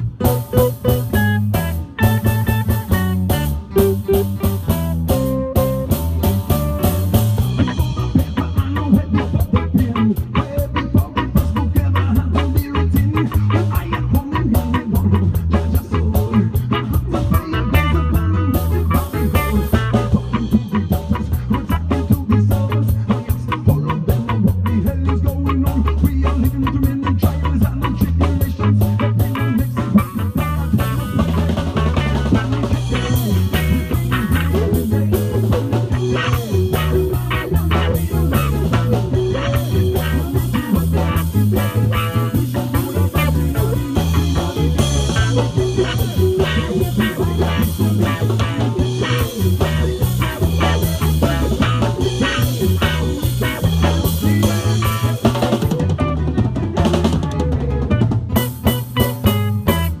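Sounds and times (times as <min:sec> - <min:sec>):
drum kit with rimshots: 0:00.0 - 1:00.0
electric bass line: 0:00.0 - 1:00.0
reggae band playing: 0:00.0 - 1:00.0.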